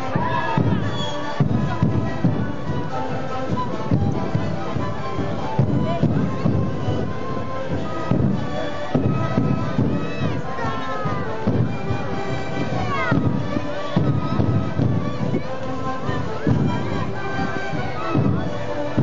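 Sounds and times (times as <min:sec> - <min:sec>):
low drum beats: 0:00.0 - 0:19.0
panpipes holding notes: 0:00.0 - 0:19.0.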